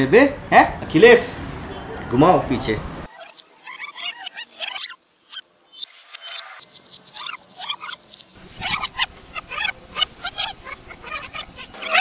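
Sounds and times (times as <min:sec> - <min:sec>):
tape rewinding sped-up voices: 0:03.1 - 0:12.0.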